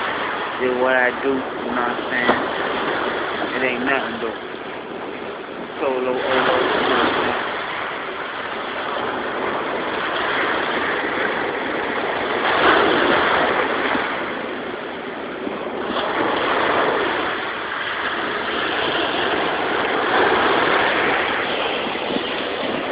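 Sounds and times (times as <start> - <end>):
surf breaking on a beach: 0.0 - 22.9.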